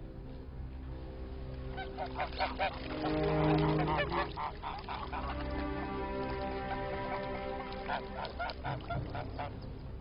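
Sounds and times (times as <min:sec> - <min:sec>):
soft background music: 0:00.0 - 0:10.0
geese honking: 0:01.7 - 0:09.7.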